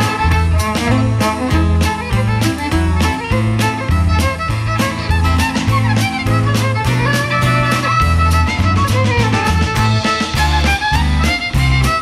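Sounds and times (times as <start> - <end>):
drum kit beat: 0.0 - 12.0
fiddle playing folk tune: 0.0 - 12.0
held bass notes: 0.0 - 12.0
keyboard: 0.0 - 12.0.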